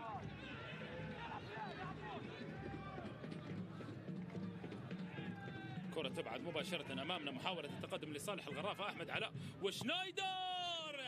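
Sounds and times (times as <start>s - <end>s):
faint voices and shouts: 0.0s - 11.0s.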